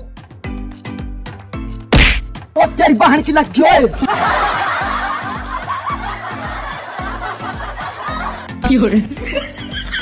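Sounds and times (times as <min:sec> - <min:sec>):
people laughing: 0:03.9 - 0:10.0.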